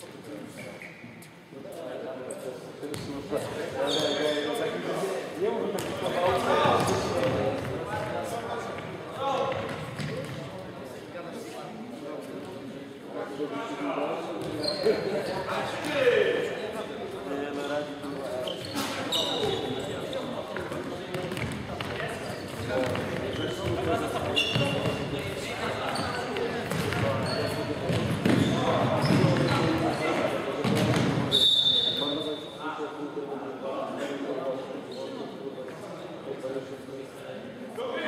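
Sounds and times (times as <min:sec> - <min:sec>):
shoes squeaking on hardwood: 0:18.4 - 0:20.2, 0:22.2 - 0:30.1.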